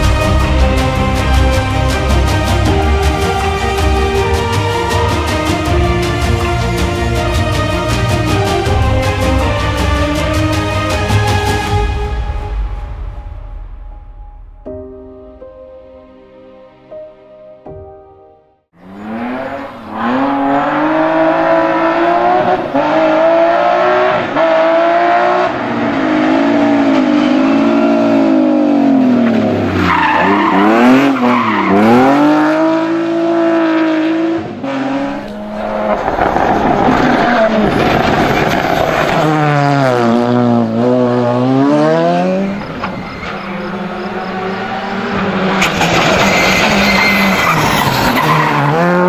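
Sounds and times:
rally car engines revving: 0:18.8 - 0:49.0
tyre squeal: 0:42.5 - 0:44.5, 0:45.6 - 0:49.0.

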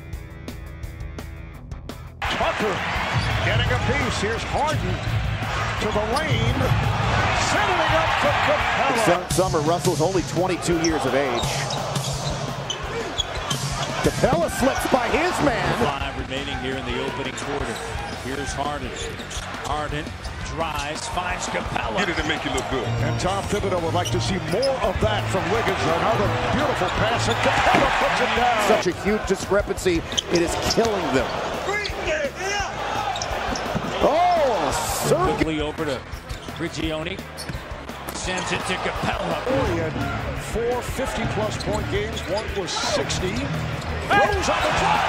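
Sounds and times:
arena crowd: 0:02.2 - 0:45.0
sneaker squeaks: 0:10.8 - 0:14.0, 0:17.4 - 0:20.9, 0:23.4 - 0:24.9, 0:30.1 - 0:31.1, 0:33.0 - 0:34.5, 0:36.1 - 0:38.6, 0:41.4 - 0:44.4.

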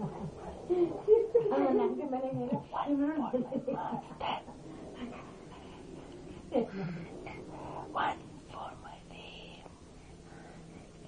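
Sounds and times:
whispered voices: 0:00.0 - 0:09.8.

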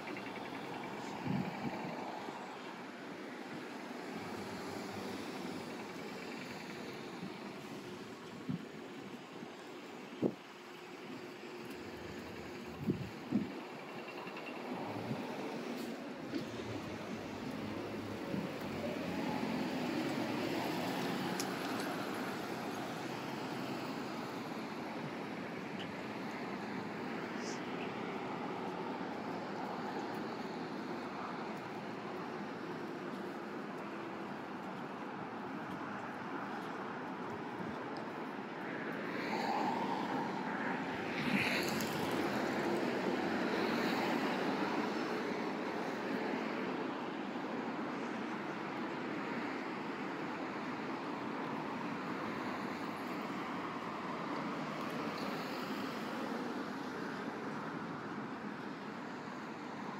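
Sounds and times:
cars and buses passing: 0:00.0 - 0:59.9.

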